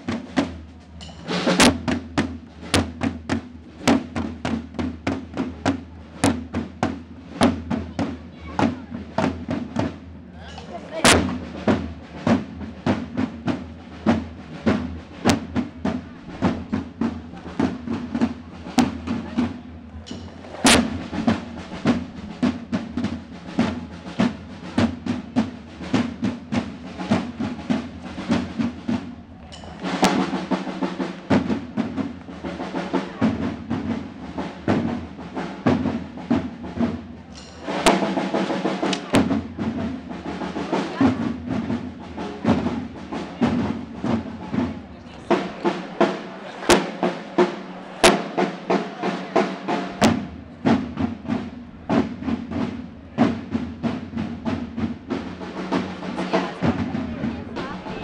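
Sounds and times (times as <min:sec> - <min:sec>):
marching side drums: 0:00.0 - 0:58.0.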